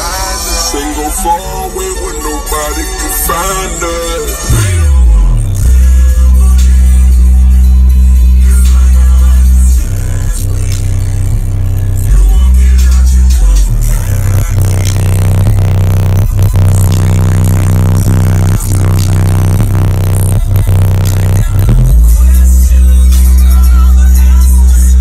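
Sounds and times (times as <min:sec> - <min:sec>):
bass-heavy electronic music: 0:00.0 - 0:25.0.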